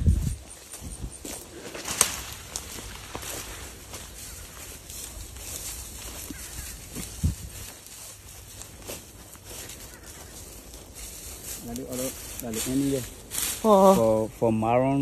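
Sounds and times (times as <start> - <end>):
footsteps rustling through grass: 0.0 - 15.0.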